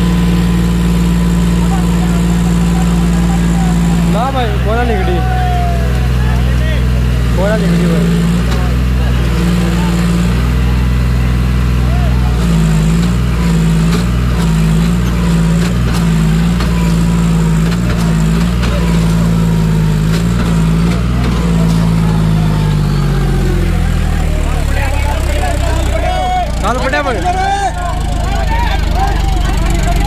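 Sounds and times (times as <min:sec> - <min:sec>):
tractor diesel engine straining: 0:00.0 - 0:30.0.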